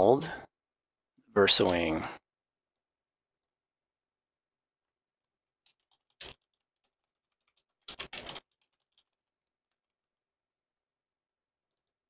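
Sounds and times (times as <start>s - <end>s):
typing on computer keyboard: 5.6s - 9.8s, 11.6s - 12.0s.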